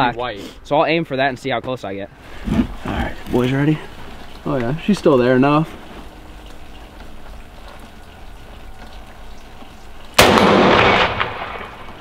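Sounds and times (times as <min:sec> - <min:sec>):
low background rumble and hiss: 0:00.0 - 0:12.0.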